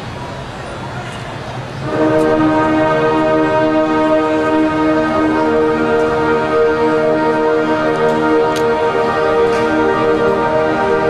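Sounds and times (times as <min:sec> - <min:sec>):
murmur of stadium crowd: 0:00.0 - 0:11.0
marching band sustained chord: 0:01.8 - 0:11.0.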